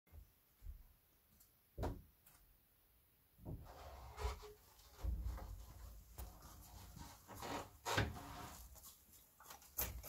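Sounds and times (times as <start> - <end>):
toilet paper rustling: 4.1 - 10.0.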